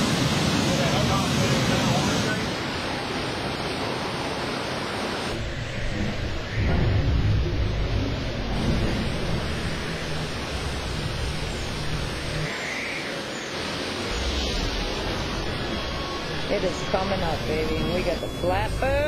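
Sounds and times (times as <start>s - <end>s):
hurricane wind and rain: 0.0s - 19.0s.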